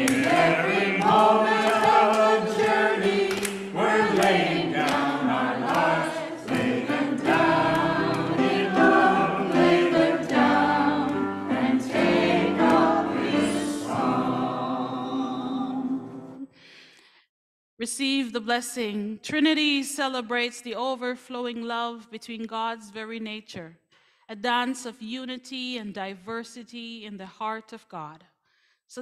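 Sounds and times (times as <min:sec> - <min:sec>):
congregation singing a hymn: 0:00.0 - 0:16.4.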